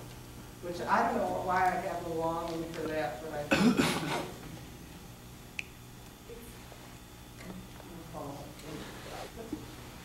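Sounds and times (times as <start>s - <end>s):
person coughing: 3.5s - 4.4s.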